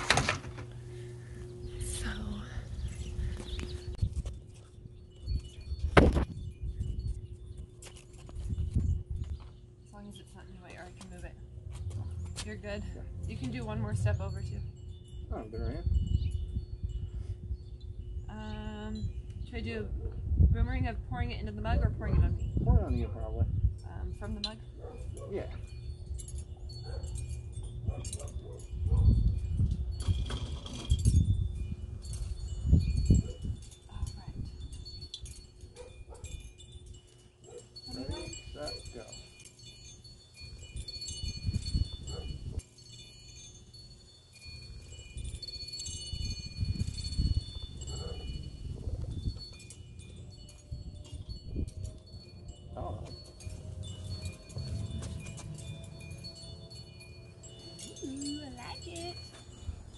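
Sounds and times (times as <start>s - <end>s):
metal wind chimes ringing: 0.7s - 59.9s
wind gusts on microphone: 1.3s - 9.4s, 11.8s - 37.0s, 39.8s - 42.6s, 43.2s - 59.9s.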